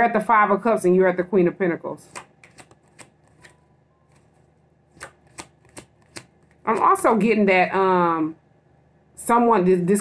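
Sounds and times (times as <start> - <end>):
cards shuffling: 2.1 - 7.1.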